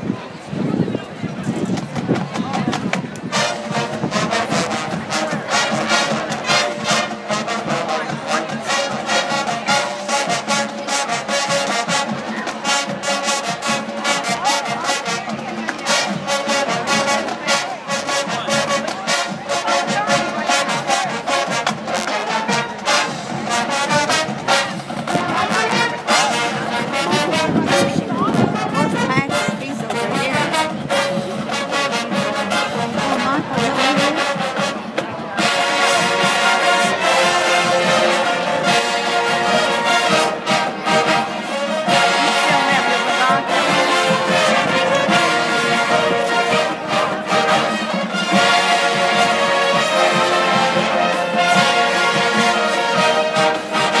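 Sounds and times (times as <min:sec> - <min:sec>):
percussion: 0:01.4 - 0:54.0
brass: 0:01.5 - 0:54.0.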